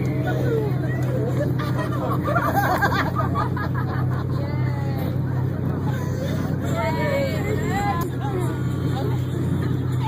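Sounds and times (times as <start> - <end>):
boat engine droning: 0.0 - 10.0
people chattering: 0.0 - 10.0.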